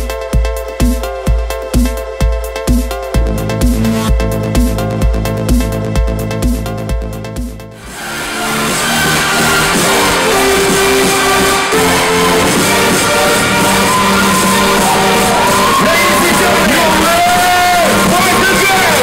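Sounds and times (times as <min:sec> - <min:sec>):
electronic dance track kick drum: 0:00.0 - 0:19.0
live dance music mix: 0:00.0 - 0:19.0
crowd noise: 0:07.8 - 0:19.0.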